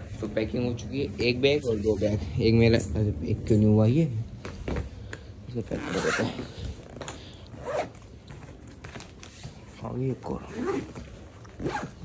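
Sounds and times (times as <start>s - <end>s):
suitcase zipper rasping: 5.7s - 8.0s, 10.5s - 12.0s.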